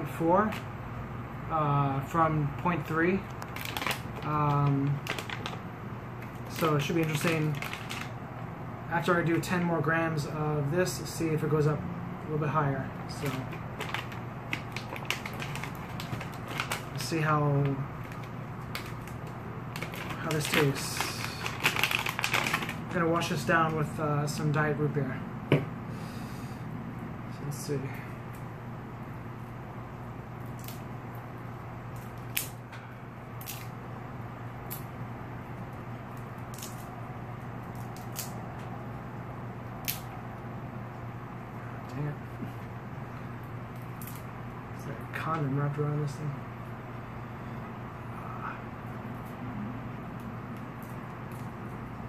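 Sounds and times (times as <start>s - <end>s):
low room hum: 0.0s - 52.0s
foil pouch crinkling: 3.2s - 8.2s, 13.1s - 23.8s.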